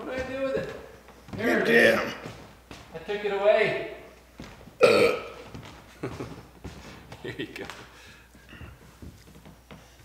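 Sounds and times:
person's throaty vocal sound: 4.8 - 5.4.

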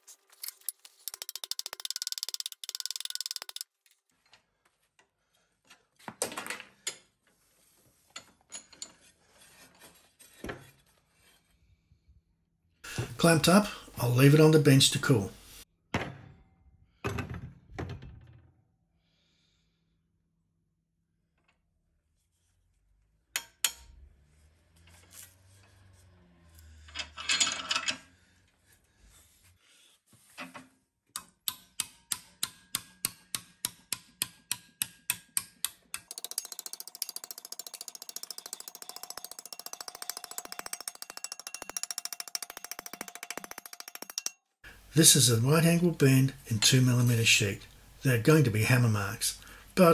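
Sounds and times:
hammer tapping sheet steel: 23.4 - 23.9, 31.2 - 44.4
metal clinks: 36.1 - 44.4.

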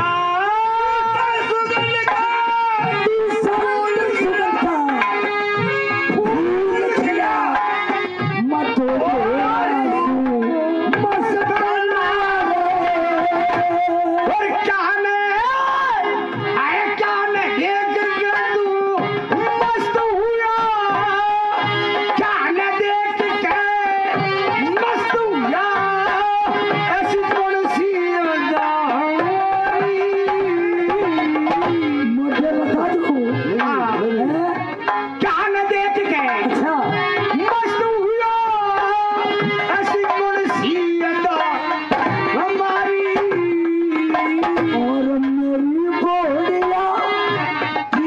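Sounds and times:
dholak drum beats: 0.0 - 48.0
harmonium playing held notes: 0.0 - 48.0.

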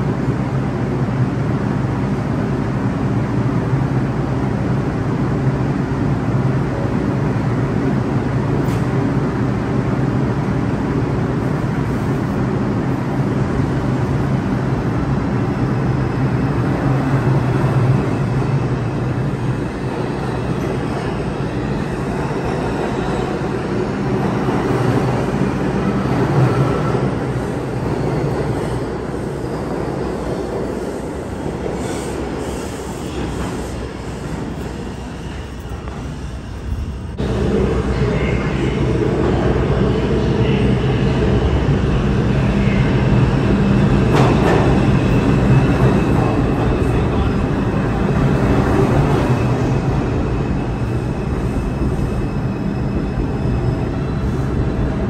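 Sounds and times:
subway train rumbling: 0.0 - 55.0.

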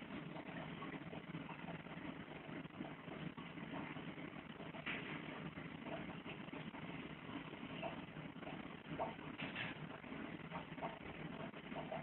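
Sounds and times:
aquarium pump motor hum: 0.0 - 12.0
continuous bubbling hiss: 0.0 - 12.0.

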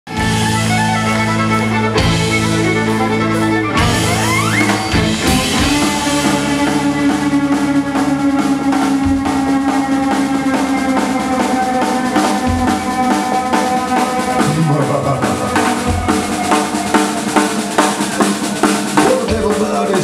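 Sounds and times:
country-rock band playing: 0.1 - 20.0
fiddle: 0.1 - 20.0.

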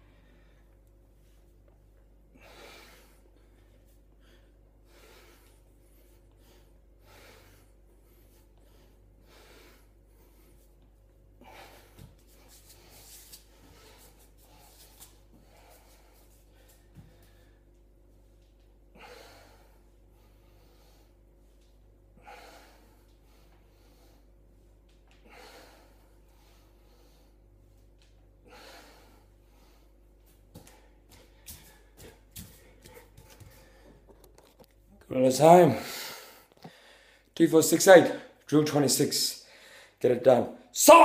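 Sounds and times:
man breathing hard: 2.3 - 17.8, 18.9 - 21.3, 22.1 - 24.4, 25.1 - 27.5, 28.4 - 34.2, 35.6 - 37.4, 39.4 - 40.0.

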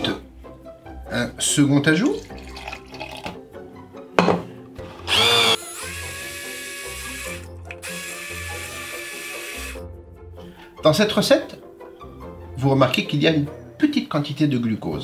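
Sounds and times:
knock: 4.2 - 4.5
immersion blender whirring: 4.8 - 9.8.

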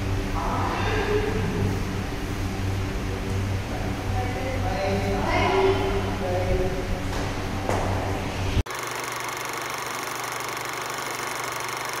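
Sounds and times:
mechanical whirr with flutter: 8.7 - 12.0.

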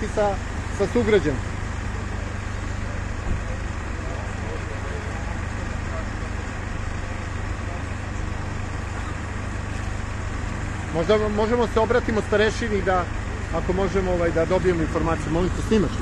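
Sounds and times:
city street traffic: 0.0 - 16.0
vehicle engine idling: 0.0 - 16.0.

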